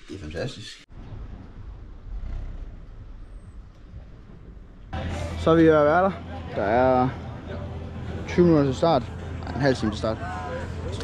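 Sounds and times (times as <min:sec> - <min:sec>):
street traffic rumble: 0:00.9 - 0:11.0.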